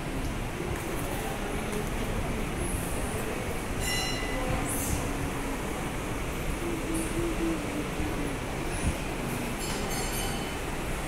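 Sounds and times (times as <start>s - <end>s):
crowd of indistinct voices: 0.0s - 11.0s
high metallic ring: 3.8s - 4.5s.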